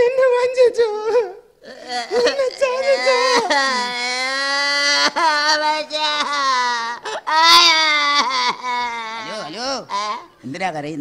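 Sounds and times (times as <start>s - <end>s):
man wailing: 1.6s - 10.4s.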